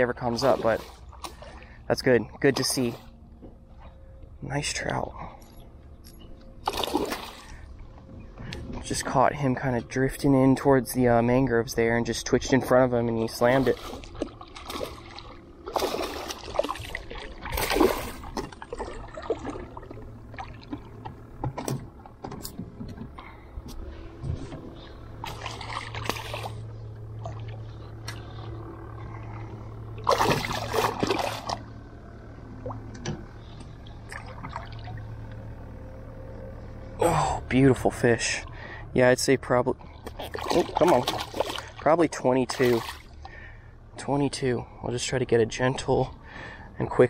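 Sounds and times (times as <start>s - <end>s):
fish thrashing and splashing: 6.6s - 7.5s, 13.4s - 21.0s, 24.8s - 28.4s, 29.4s - 31.7s, 40.0s - 41.9s, 42.5s - 43.2s.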